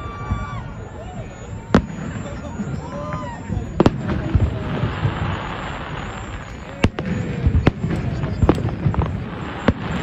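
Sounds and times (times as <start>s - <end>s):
fireworks shells bursting: 0.0s - 10.0s.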